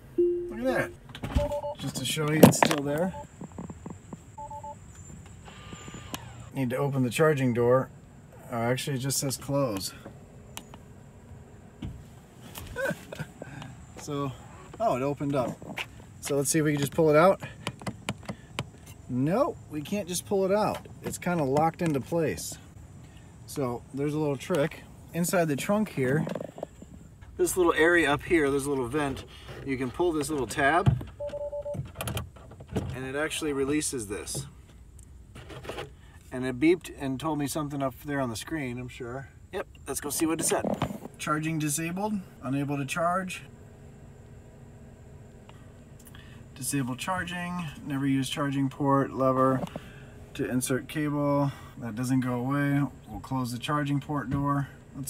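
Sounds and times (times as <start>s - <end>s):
two-tone electronic beeps: 0.2s - 1.9s, 4.4s - 4.8s.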